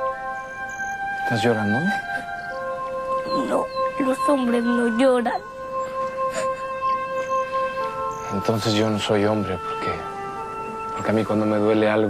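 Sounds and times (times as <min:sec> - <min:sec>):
soft background score: 0:00.0 - 0:12.0.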